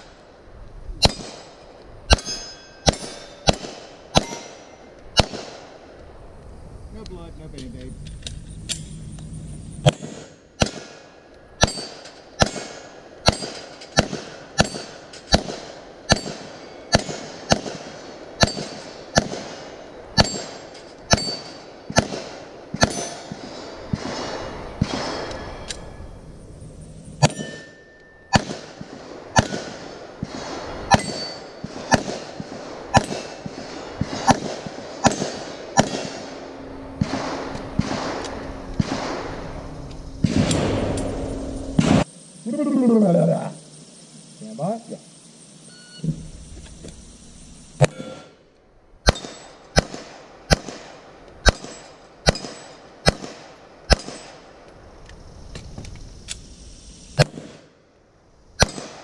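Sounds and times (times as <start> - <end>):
bullet clanging on steel plate: 2.1 - 3.5, 27.2 - 28.3
handgun shots: 2.1 - 4.6, 9.9 - 11.0, 11.6 - 19.5, 29.4 - 36.2, 49.1 - 54.3
steady beep: 27.2 - 28.4, 45.6 - 46.1.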